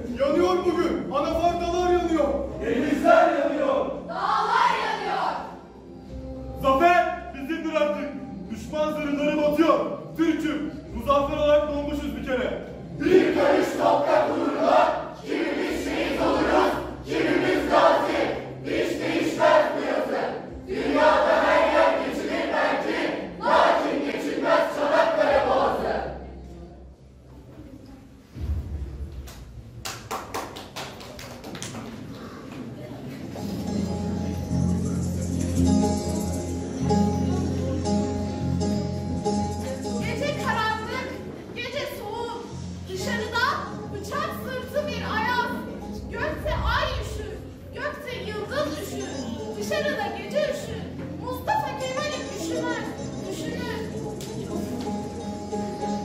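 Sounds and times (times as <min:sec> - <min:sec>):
music playing: 0:00.0 - 0:27.3, 0:33.2 - 0:56.0
low thud: 0:28.3 - 0:29.3
girl reciting poetry: 0:40.0 - 0:53.9.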